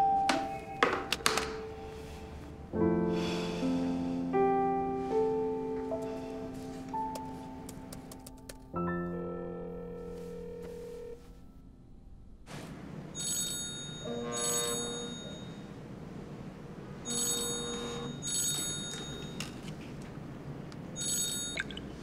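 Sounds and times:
mobile phone ringing: 17.1s - 19.4s.

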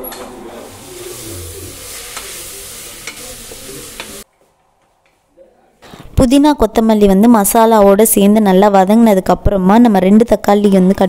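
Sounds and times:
onions sizzling in a pot: 0.0s - 4.3s.

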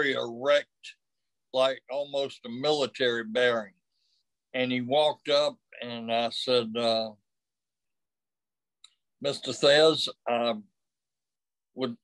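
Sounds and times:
man speaking: 0.0s - 3.8s, 4.5s - 7.2s, 9.2s - 10.7s, 11.8s - 12.0s.

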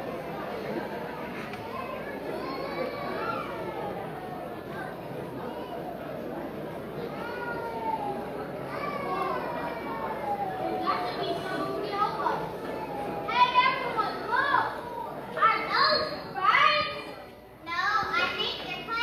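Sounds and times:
children's high cries: 0.0s - 17.2s
children talking and calling out: 0.0s - 19.0s.

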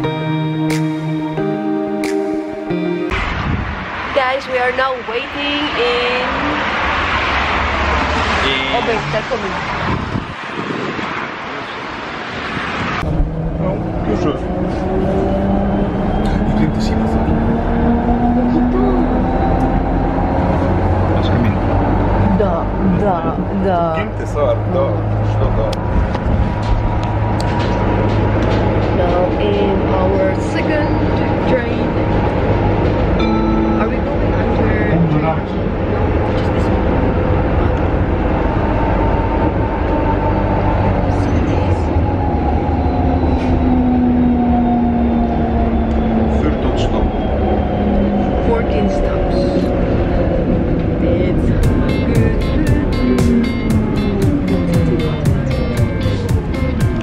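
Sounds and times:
outdoor rushing noise: 3.1s - 33.2s, 33.8s - 57.0s
train low rumble: 3.1s - 57.0s.

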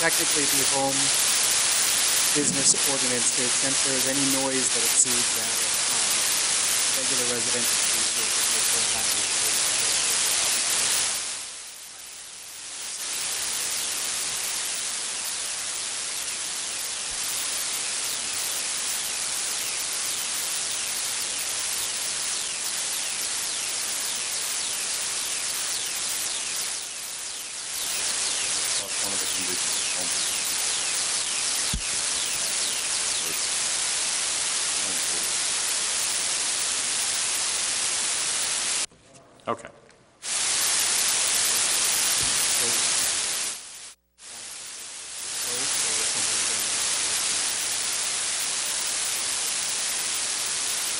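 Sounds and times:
static hiss: 0.0s - 38.9s, 40.2s - 50.9s.

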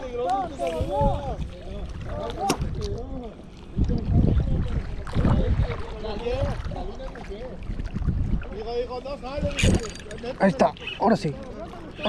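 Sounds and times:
wind on microphone: 0.0s - 10.4s.

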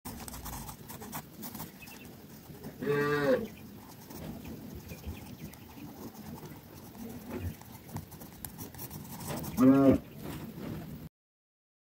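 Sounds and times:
pencil scratching on paper: 0.1s - 2.8s, 3.7s - 9.8s
low moo-like call: 2.8s - 3.5s, 9.6s - 10.1s.

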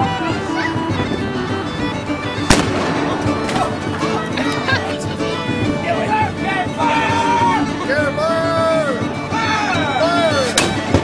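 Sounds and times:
music: 0.0s - 11.0s
cannon firing bang: 2.5s - 3.8s.

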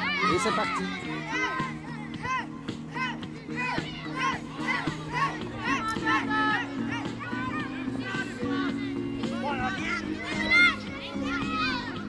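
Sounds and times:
background music low chords: 0.0s - 12.0s
children shouting: 0.0s - 12.0s.

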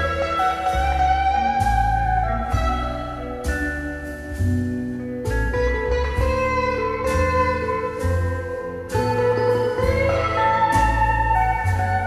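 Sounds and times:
instrumental music over loudspeakers: 0.0s - 12.0s.

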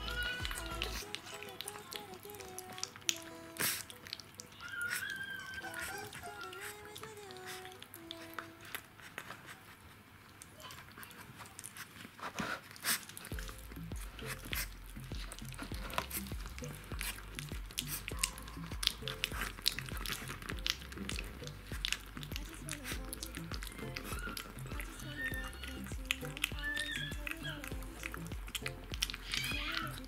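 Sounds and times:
low bass beat: 0.0s - 1.0s, 13.3s - 30.0s
background music: 0.0s - 8.7s, 13.3s - 30.0s
puppy lapping and smacking: 0.1s - 9.5s, 10.4s - 30.0s.

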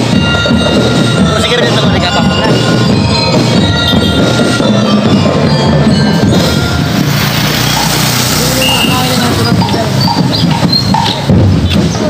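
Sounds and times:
bell-lyre notes: 0.0s - 11.3s
crowd hubbub: 0.0s - 12.0s
marching drums: 0.0s - 12.0s.

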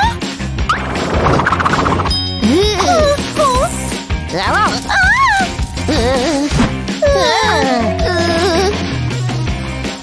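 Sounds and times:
background music: 0.0s - 10.0s
cartoon character yelping: 7.1s - 8.5s.

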